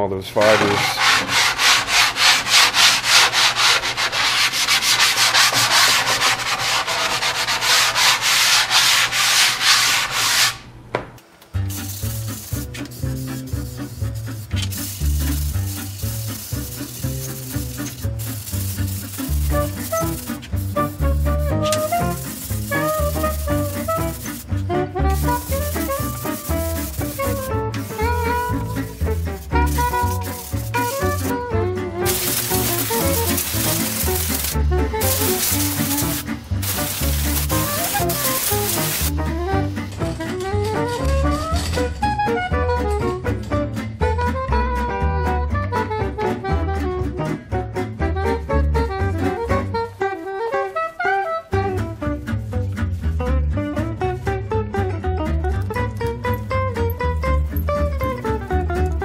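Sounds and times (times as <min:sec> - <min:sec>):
sanding block rubbing wood: 0:00.4 - 0:10.6, 0:11.7 - 0:31.4, 0:32.0 - 0:39.2
swing music with walking bass: 0:11.5 - 0:59.0.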